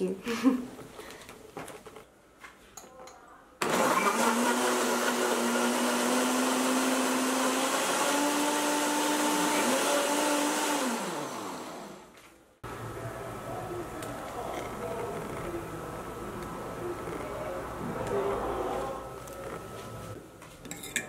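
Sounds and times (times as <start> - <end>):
blender motor whining: 3.6 - 12.1.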